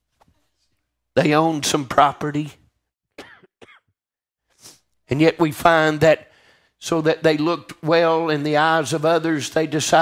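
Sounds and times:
man coughing: 0:03.2 - 0:03.9
faint intake of breath: 0:06.3 - 0:06.8.

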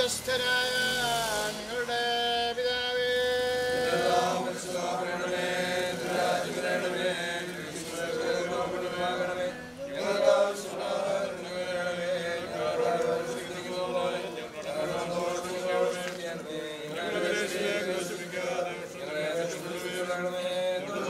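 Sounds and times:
voices chanting a hymn: 0:00.0 - 0:21.0.

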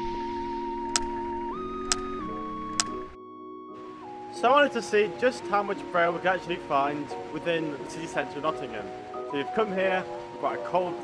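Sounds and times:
music of held notes: 0:00.0 - 0:11.0
sharp ticks: 0:00.9 - 0:01.1, 0:01.9 - 0:02.1.

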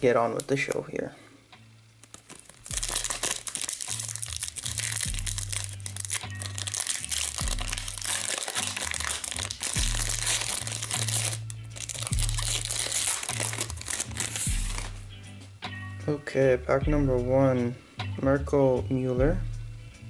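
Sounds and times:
cards being handled: 0:02.0 - 0:15.0
foil wrapper crinkling: 0:02.0 - 0:15.0
music with deep bass line: 0:02.7 - 0:20.0.

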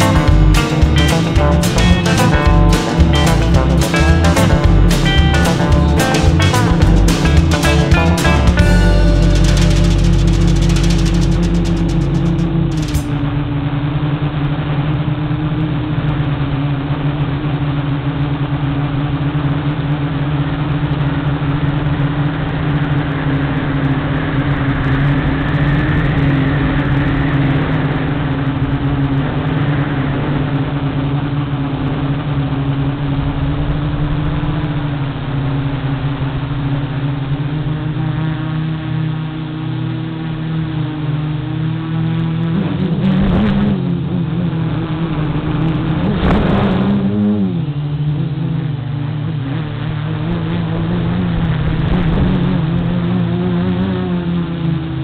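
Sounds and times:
drone motors humming: 0:00.0 - 0:15.7.

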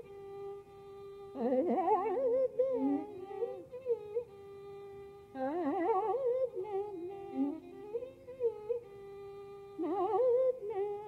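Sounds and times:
woman singing: 0:00.0 - 0:04.4, 0:05.3 - 0:11.0.

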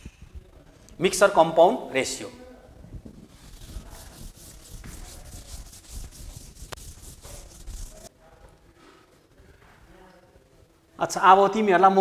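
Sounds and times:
scratchy handwriting strokes: 0:03.1 - 0:08.1.

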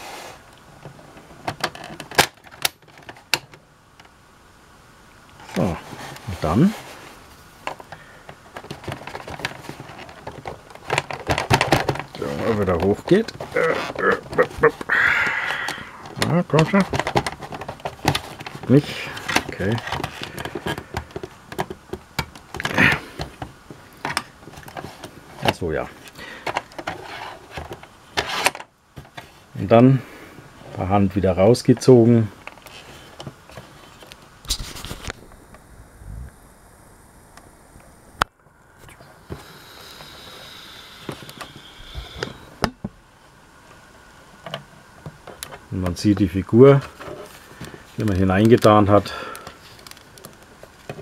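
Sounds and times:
plastic scrape: 0:05.4 - 0:14.9, 0:15.5 - 0:29.5, 0:32.4 - 0:35.2, 0:46.8 - 0:51.0
plastic toy parts clicking and knocking: 0:07.6 - 0:14.9, 0:15.5 - 0:25.6.

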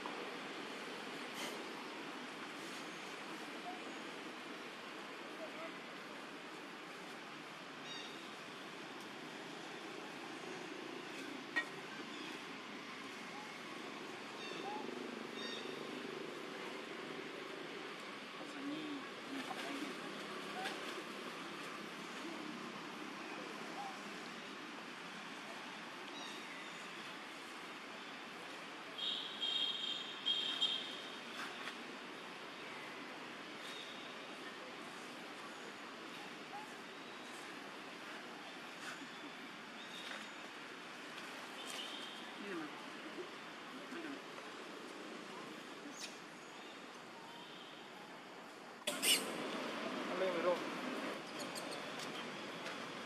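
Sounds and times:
outdoor background hiss: 0:00.0 - 0:53.0
faint thin chirps: 0:48.9 - 0:49.3
high-pitched monkey mewing call: 0:48.9 - 0:49.3.

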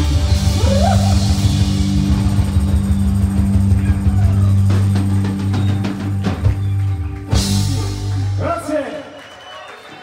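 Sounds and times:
rock band held note: 0:00.0 - 0:08.5
rumbling bass: 0:00.0 - 0:08.5.

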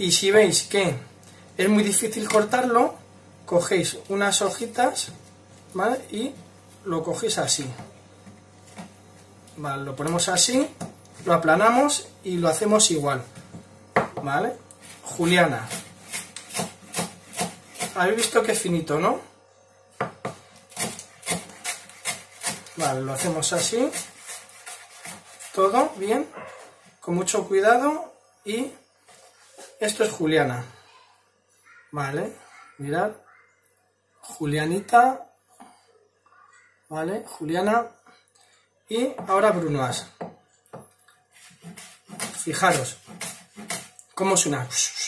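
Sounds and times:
knife cutting leek on board: 0:15.6 - 0:18.3, 0:20.7 - 0:25.9, 0:41.3 - 0:43.9
knife slicing leek on cutting board: 0:15.7 - 0:18.0, 0:41.4 - 0:43.9.

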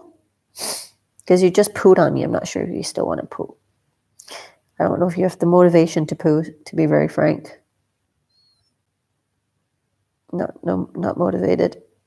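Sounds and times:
faint high chirp: 0:08.2 - 0:08.8.

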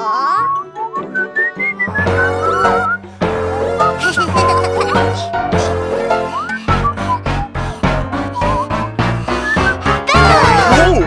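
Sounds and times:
person whistling a tune: 0:00.4 - 0:03.1, 0:03.8 - 0:10.0
background music with bass: 0:01.8 - 0:11.0.

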